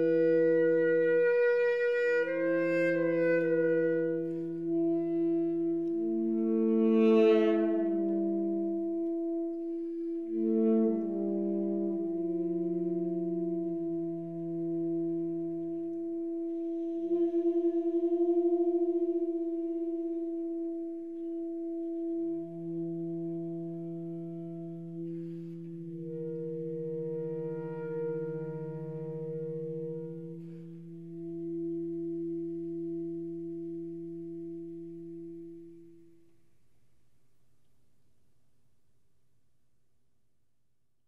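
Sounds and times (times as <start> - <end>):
tenor saxophones holding notes: 0.0 - 36.1.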